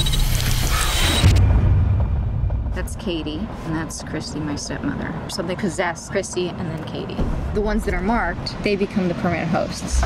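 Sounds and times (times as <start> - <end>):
deep rumble: 1.2 - 5.3, 9.8 - 10.0.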